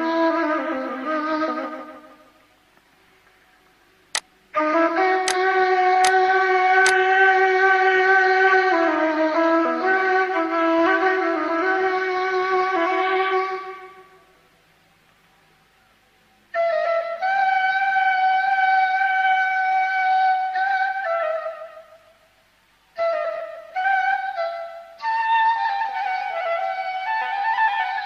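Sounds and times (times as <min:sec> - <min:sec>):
flute-like long note: 0:04.6 - 0:14.3, 0:16.5 - 0:22.2, 0:22.9 - 0:28.0.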